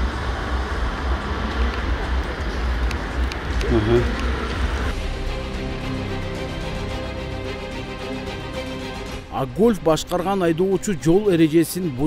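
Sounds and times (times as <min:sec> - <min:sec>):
street traffic rumble: 0:00.0 - 0:11.8
background music: 0:00.1 - 0:12.0.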